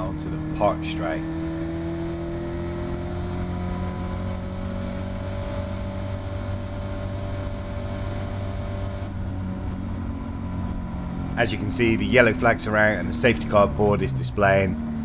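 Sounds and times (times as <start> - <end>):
race car engine at full throttle: 0.0 - 15.0
wind and road rush: 0.0 - 15.0.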